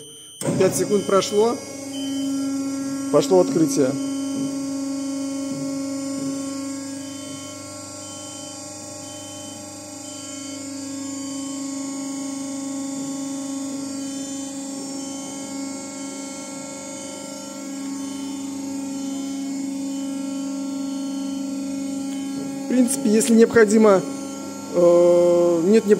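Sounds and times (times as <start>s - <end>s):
hydraulic power unit humming: 0.0s - 25.9s.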